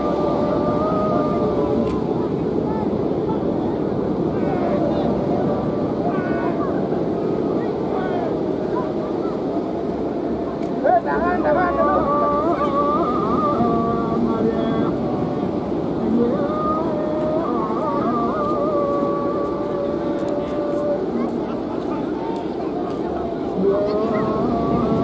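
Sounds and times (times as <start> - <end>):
crowd noise: 0.0 - 25.0
kite hummers droning: 0.0 - 25.0
voices: 0.0 - 25.0
wind: 0.0 - 25.0.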